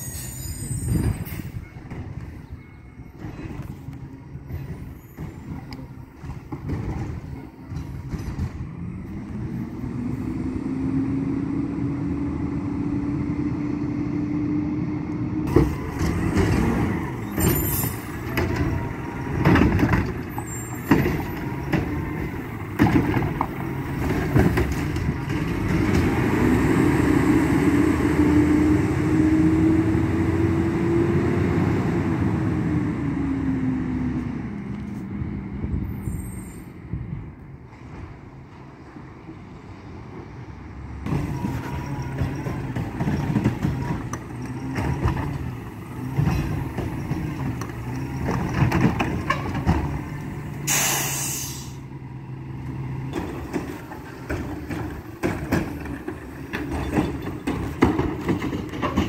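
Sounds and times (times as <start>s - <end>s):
high squeal: 0.0s - 1.8s, 17.2s - 18.4s, 20.3s - 21.0s, 35.9s - 36.8s
diesel engine revving: 3.4s - 36.0s, 40.6s - 59.0s.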